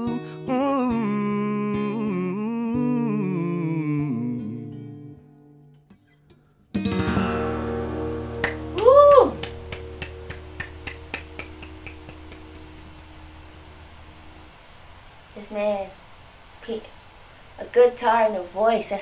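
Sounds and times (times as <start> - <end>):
acoustic guitar chord ringing: 0.0 - 15.2
hand claps: 8.2 - 13.4
person exclaiming: 8.7 - 9.5.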